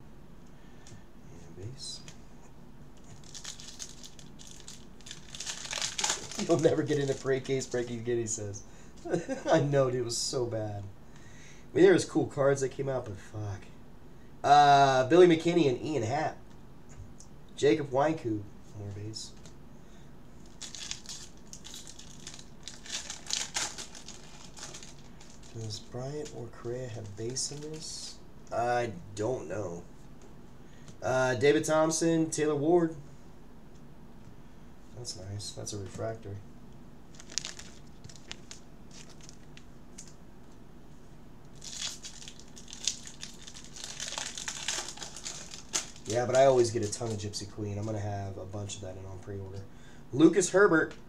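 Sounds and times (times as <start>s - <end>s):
foil wrapper crinkling: 3.0s - 8.1s, 20.4s - 28.0s, 37.1s - 40.2s, 41.5s - 48.0s.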